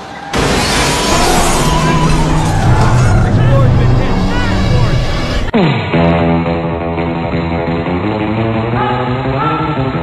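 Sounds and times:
debris rushing noise: 0.3 - 5.5
deep low drone: 1.1 - 8.2.

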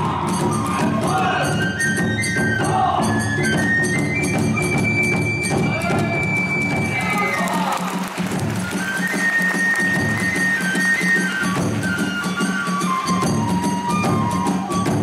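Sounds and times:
bamboo flute long high notes: 0.0 - 15.0
taiko drum beat: 0.0 - 15.0.

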